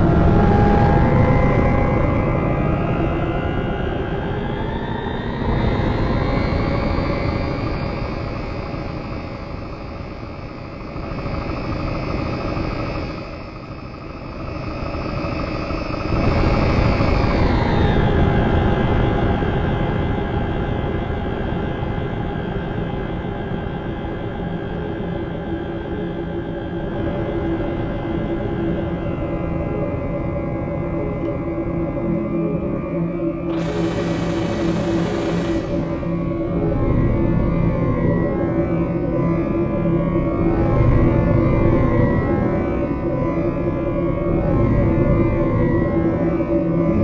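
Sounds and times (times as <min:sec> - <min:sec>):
dense electronic drone: 0:31.4 - 0:47.0.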